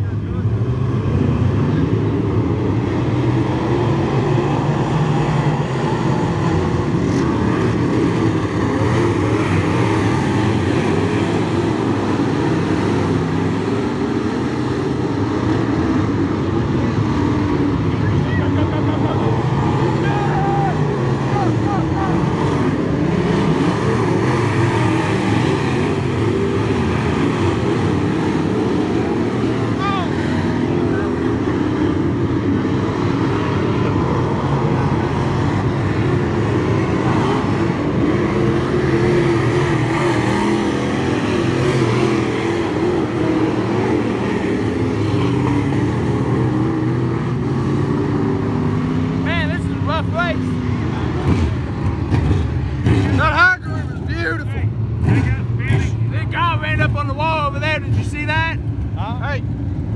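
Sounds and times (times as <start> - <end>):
race car engines droning: 0.0 - 59.9.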